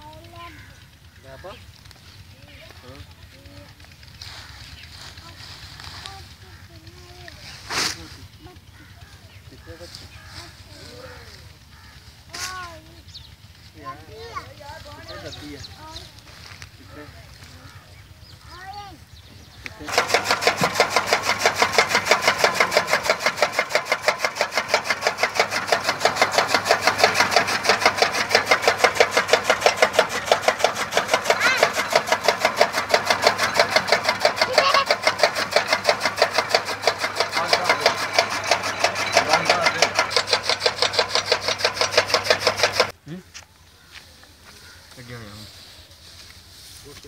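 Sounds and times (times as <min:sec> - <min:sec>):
motor hum: 0:00.0 - 0:43.0
chaff cutter blades chopping: 0:03.6 - 0:08.4, 0:19.5 - 0:43.0.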